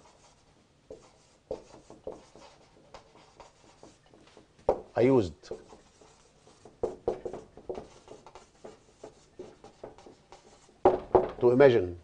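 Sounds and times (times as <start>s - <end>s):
marker squeaking on whiteboard: 0.0s - 11.3s.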